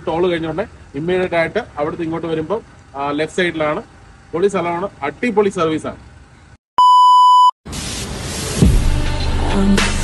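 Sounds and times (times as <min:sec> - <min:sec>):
electronic beep: 0:06.8 - 0:07.5.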